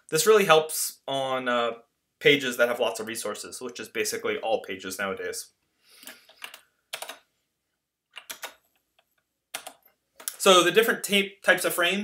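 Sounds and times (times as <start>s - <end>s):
keyboard keys clicking: 6.3s - 7.2s, 8.2s - 8.8s, 9.5s - 10.3s.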